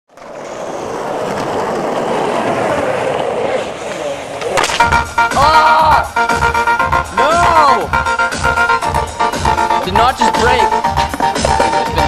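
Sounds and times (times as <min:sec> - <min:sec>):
skateboard wheels rolling on concrete: 0:00.1 - 0:12.0.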